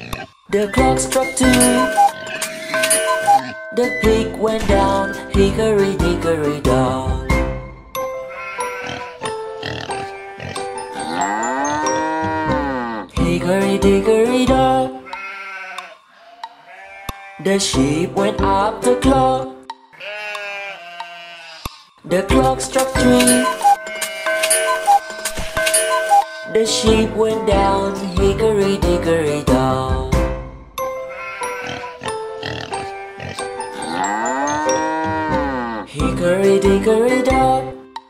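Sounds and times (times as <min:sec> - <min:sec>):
instrumental children's song: 0:00.4 - 0:15.3, 0:17.4 - 0:20.4, 0:22.0 - 0:38.0
cartoon sheep bleating: 0:08.3 - 0:09.2, 0:09.9 - 0:13.0, 0:15.0 - 0:17.5, 0:20.0 - 0:21.8, 0:31.1 - 0:32.0, 0:32.6 - 0:35.9.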